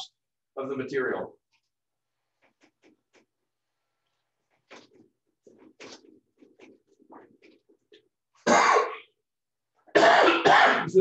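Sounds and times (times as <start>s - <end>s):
man sneezing loudly: 9.9s - 11.0s.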